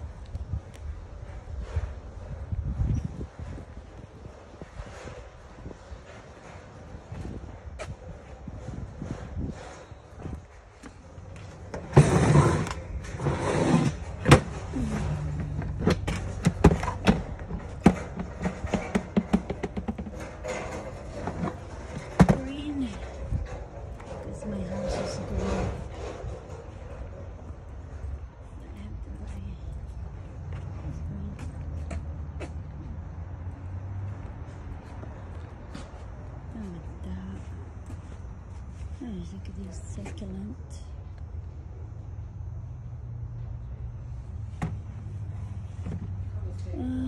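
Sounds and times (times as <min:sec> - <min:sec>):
handling noise: 0:00.0 - 0:36.4.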